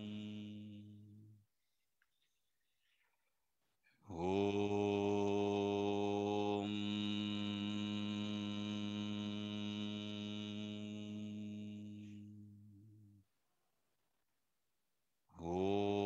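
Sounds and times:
man chanting low om: 0:00.0 - 0:01.4, 0:04.1 - 0:13.2, 0:15.4 - 0:16.0.

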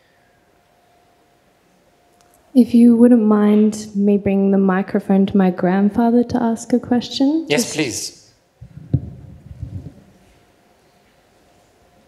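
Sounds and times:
low rumbling bumps: 0:08.6 - 0:10.2
microphone handling thump: 0:08.6 - 0:10.2.

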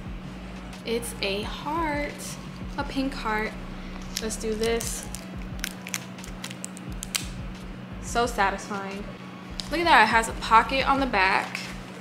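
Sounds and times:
plastic film crinkling: 0:04.0 - 0:07.3.

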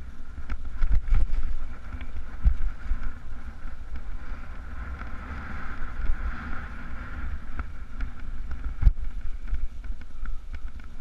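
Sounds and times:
bike rattling over dirt: 0:00.0 - 0:11.0
wind buffeting microphone: 0:00.0 - 0:11.0.

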